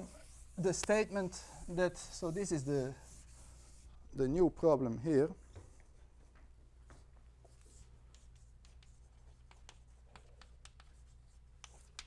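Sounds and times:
chalk writing on blackboard: 0:00.0 - 0:03.9, 0:06.9 - 0:12.0.

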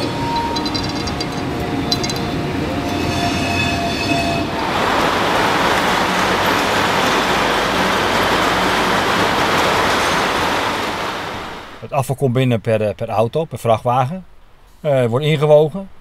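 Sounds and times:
train wheels squealing: 0:00.0 - 0:04.5
freight train wagons rolling: 0:00.0 - 0:11.9
loud steady rushing noise: 0:03.5 - 0:11.9.

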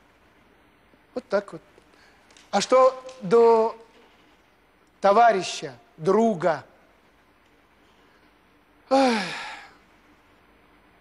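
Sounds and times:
man sighing: 0:08.9 - 0:09.8.

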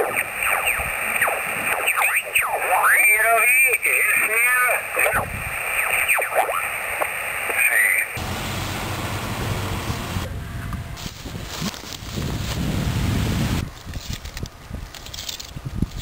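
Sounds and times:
shortwave tuning whistles: 0:00.0 - 0:04.0, 0:05.0 - 0:06.6
wind buffeting microphone: 0:09.1 - 0:16.0.

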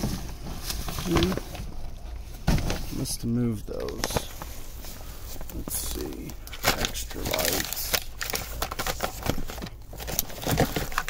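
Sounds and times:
plastic containers knocking and rustling: 0:00.0 - 0:04.6, 0:05.3 - 0:11.0.

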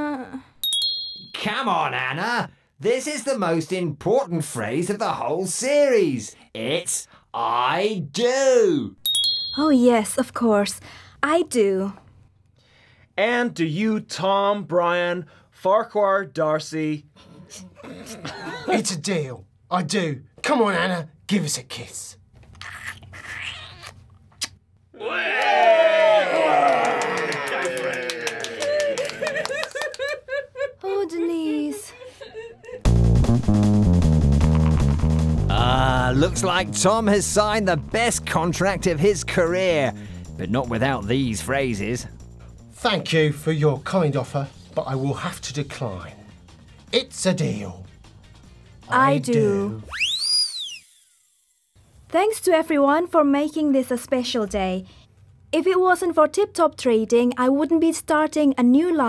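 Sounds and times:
cartoon kissing smooch: 0:22.6 - 0:24.6
swooping whistle sound effect: 0:49.8 - 0:51.3.

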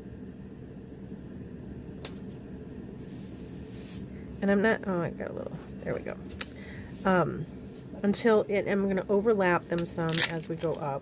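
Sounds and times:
low room hum: 0:00.0 - 0:11.0
packing tape pressed on paper: 0:09.7 - 0:10.7.

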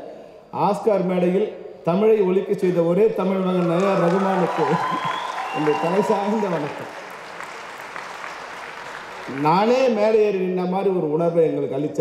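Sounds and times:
audience applauding: 0:03.4 - 0:10.2.

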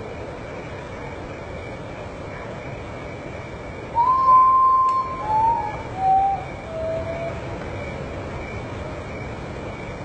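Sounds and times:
steady background hiss: 0:00.0 - 0:10.0
bird whistling mournful song: 0:03.9 - 0:07.5.

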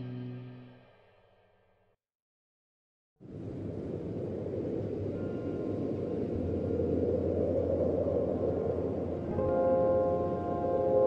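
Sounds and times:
wind-like rushing noise: 0:03.2 - 0:11.0
low electronic drone: 0:03.3 - 0:11.0.

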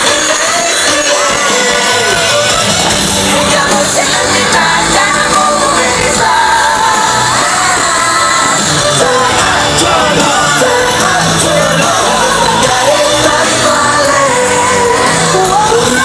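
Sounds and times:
live pop concert music: 0:00.0 - 0:16.0
person singing: 0:00.0 - 0:16.0.

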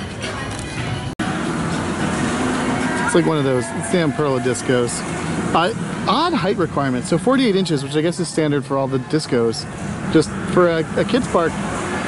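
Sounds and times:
ride mechanical rumble: 0:00.0 - 0:12.0.

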